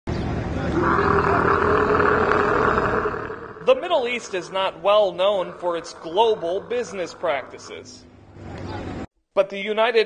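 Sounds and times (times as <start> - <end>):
camel bellowing: 0.7 - 8.0.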